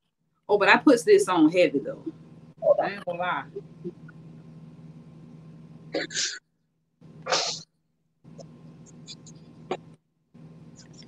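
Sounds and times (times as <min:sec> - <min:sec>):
woman sneezing: 0:07.3 - 0:07.6.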